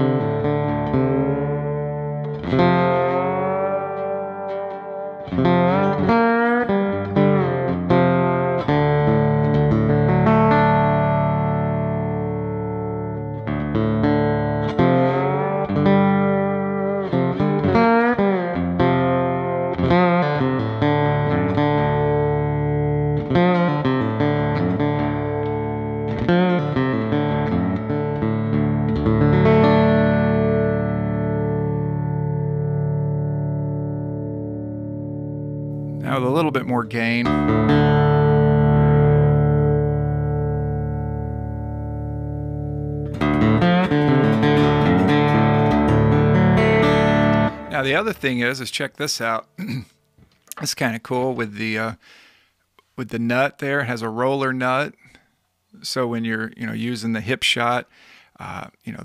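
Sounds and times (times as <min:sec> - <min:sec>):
lap steel guitar with slide: 0:00.0 - 0:49.4.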